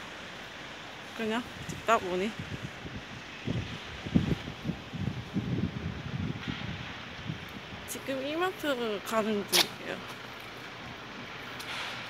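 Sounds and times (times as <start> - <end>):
street noise: 0.0 - 12.0
wind buffeting microphone: 1.2 - 9.0.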